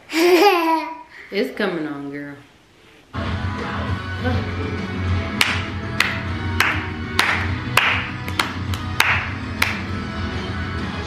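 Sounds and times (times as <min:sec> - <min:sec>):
upbeat music from tv: 0:03.1 - 0:11.0
hand claps: 0:05.4 - 0:10.0.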